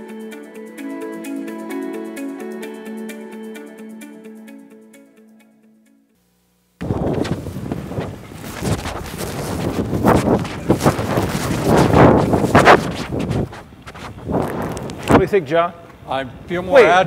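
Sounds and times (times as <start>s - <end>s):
inflated fabric rustling and bumping: 6.8s - 15.3s
blower fans rushing: 6.8s - 15.5s.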